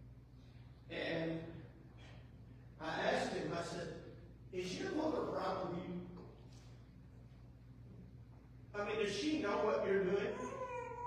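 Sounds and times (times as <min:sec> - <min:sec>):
man speaking: 0:02.8 - 0:06.2, 0:08.8 - 0:10.5.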